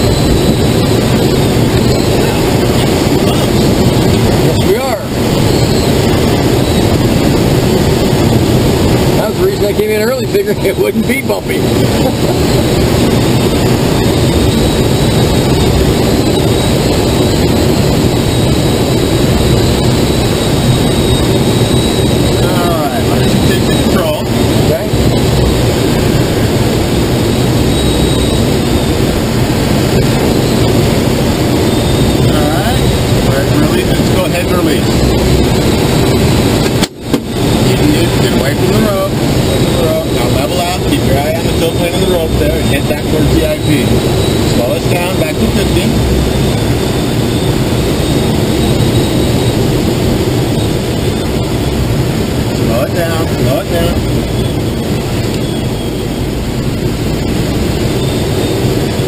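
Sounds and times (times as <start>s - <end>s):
air rushing past canopy: 11.5s - 59.0s.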